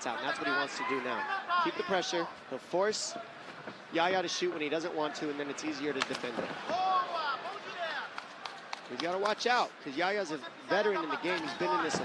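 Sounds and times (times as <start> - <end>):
low crowd hubbub: 0.0 - 12.0.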